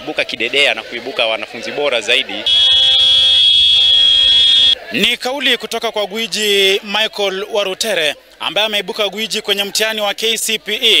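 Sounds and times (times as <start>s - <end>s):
horn long steady note: 2.5s - 4.8s.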